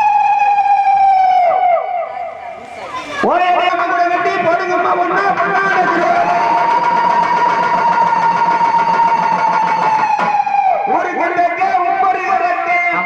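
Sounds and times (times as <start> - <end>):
long steady note over loudspeaker: 0.0 - 13.0.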